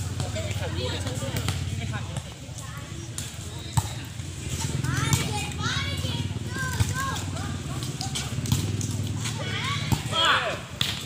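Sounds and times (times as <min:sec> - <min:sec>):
volleyball players shouting: 0:00.0 - 0:11.0
hand slapping a volleyball: 0:01.0 - 0:02.4.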